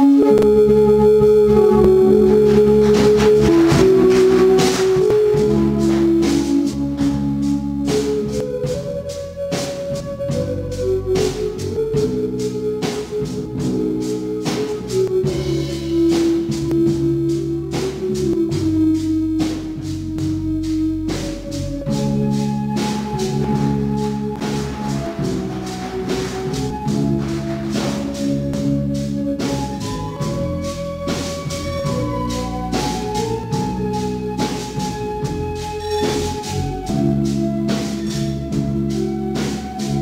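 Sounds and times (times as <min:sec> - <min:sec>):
drum kit beat: 0:00.0 - 0:40.0
electric bass: 0:00.0 - 0:40.0
organ-style keyboard chords: 0:00.0 - 0:40.0.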